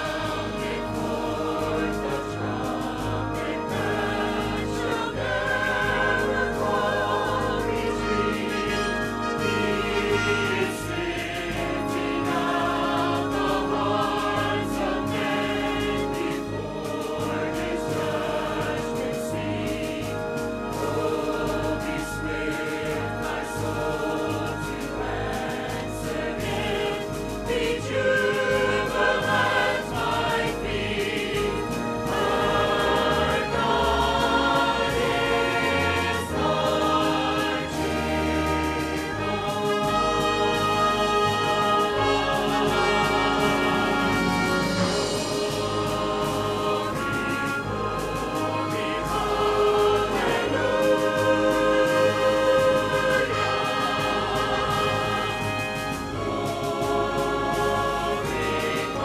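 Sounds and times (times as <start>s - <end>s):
church choir singing in parts: 0.0s - 59.0s
instrumental accompaniment: 0.0s - 59.0s
sustained bass notes: 0.0s - 59.0s.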